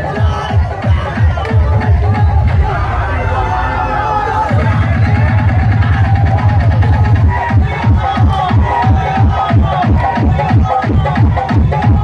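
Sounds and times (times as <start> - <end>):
dance music with heavy bass: 0.0 - 12.0.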